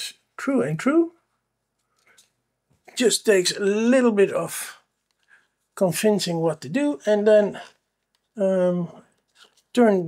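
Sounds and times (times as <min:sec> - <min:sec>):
man speaking: 0:00.0 - 0:01.3, 0:02.8 - 0:04.9, 0:05.8 - 0:09.1, 0:09.7 - 0:10.0.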